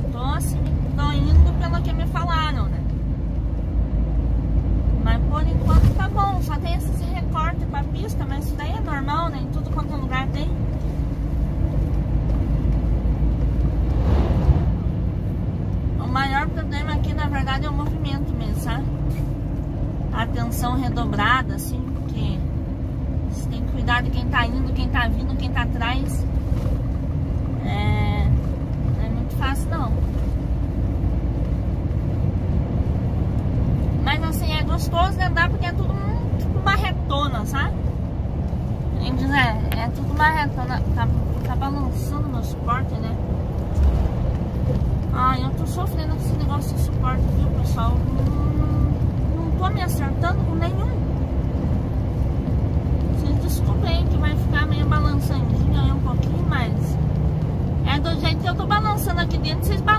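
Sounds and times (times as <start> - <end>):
road noise inside cab: 0.0 - 59.9
truck diesel engine drone: 0.0 - 59.9.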